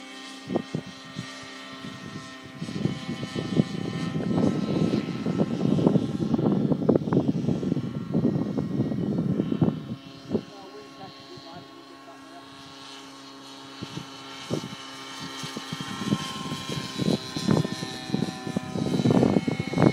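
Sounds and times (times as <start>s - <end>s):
model helicopter rotor whine: 0.0s - 19.9s.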